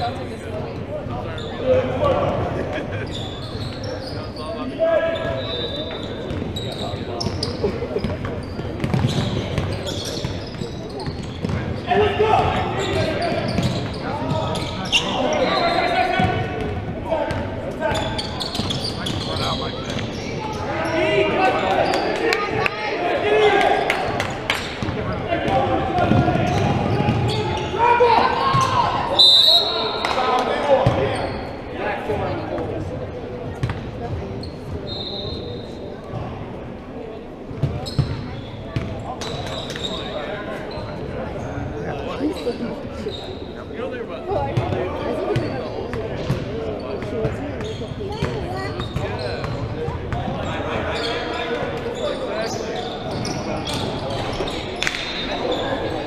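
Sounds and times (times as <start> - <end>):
referee's whistle: 5.2 - 6.9, 28.6 - 30.2, 34.9 - 35.6.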